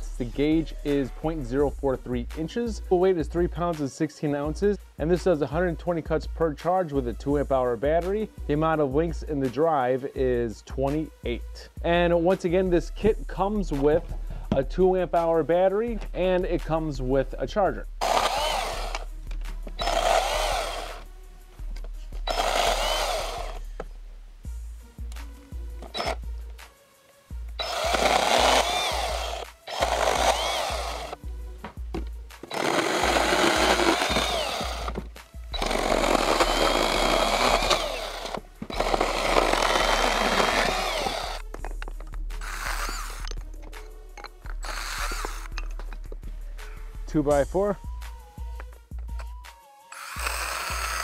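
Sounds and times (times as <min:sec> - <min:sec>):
background music: 0:00.0 - 0:51.0
cordless chainsaw cutting branches: 0:18.0 - 0:19.1, 0:19.8 - 0:21.0, 0:22.2 - 0:23.6, 0:25.9 - 0:26.2, 0:27.6 - 0:31.2, 0:32.4 - 0:41.5, 0:42.4 - 0:43.3, 0:44.6 - 0:45.5, 0:49.9 - 0:51.0.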